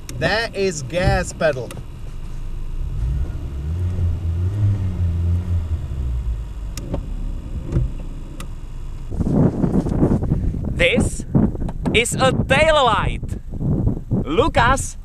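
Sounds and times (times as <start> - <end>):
car engine revving: 0.0 - 10.3.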